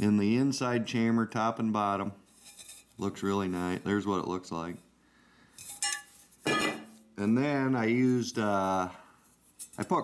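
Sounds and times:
steel pots clinking: 5.6 - 7.1.

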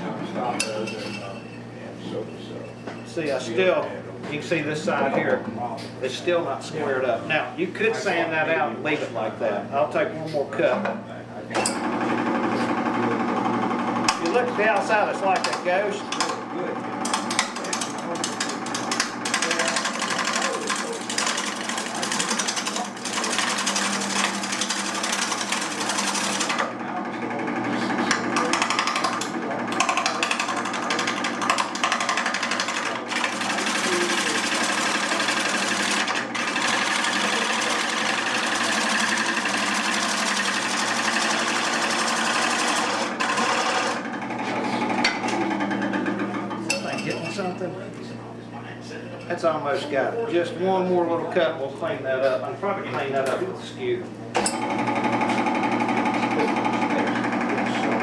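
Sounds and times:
wood lathe cutting wood: 11.8 - 46.5, 54.5 - 58.0.

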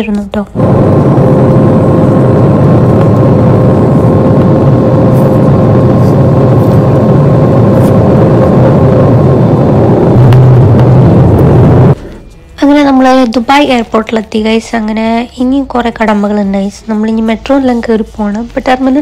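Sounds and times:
jet engine and air noise: 0.0 - 13.0
low rumble: 0.0 - 19.0
steady whine: 0.0 - 19.0.

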